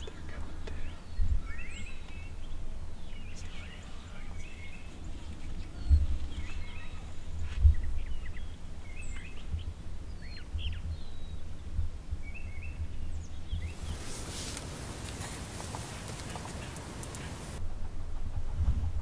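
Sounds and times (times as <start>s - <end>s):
small birds chirping: 0.0s - 17.6s.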